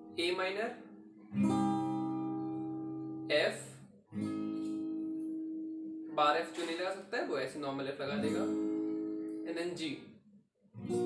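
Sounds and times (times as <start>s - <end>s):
acoustic guitar chord ringing: 0.0s - 7.1s, 8.0s - 9.8s.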